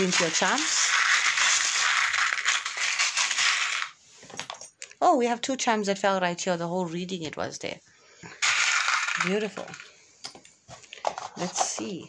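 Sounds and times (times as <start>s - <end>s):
charms clicking on a table: 0.0s - 4.8s, 8.4s - 9.9s.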